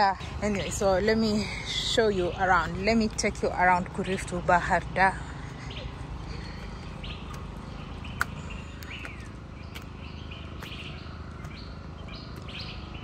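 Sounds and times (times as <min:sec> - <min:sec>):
birds chirping: 0:00.0 - 0:13.0
steady low background noise: 0:00.0 - 0:13.0.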